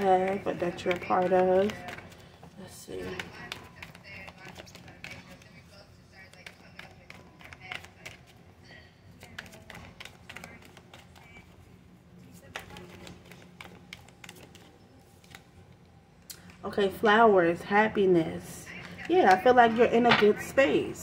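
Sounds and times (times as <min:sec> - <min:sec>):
cards shuffled by hand: 0:00.0 - 0:02.3, 0:06.2 - 0:08.4, 0:09.2 - 0:11.7, 0:12.3 - 0:15.6.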